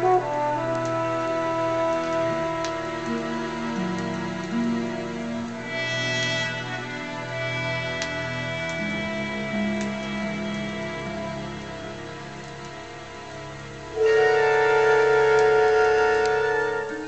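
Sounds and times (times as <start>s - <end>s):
orchestral chords from a record: 0.0s - 17.0s.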